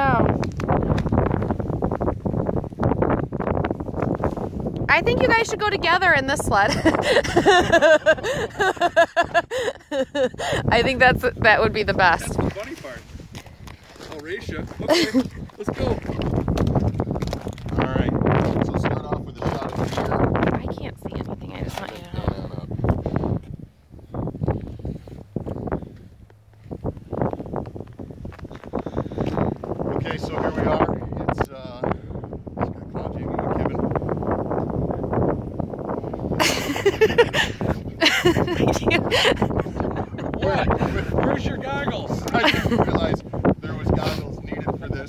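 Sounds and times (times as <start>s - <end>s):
people talking: 0.0s - 0.3s, 4.9s - 13.0s, 14.1s - 16.1s, 17.8s - 22.7s, 29.9s - 31.8s, 38.0s - 45.0s
wind buffeting microphone: 0.0s - 45.0s
men laughing: 6.5s - 11.0s, 14.8s - 16.1s, 36.4s - 41.5s, 42.2s - 43.2s
man speaking: 40.3s - 43.1s.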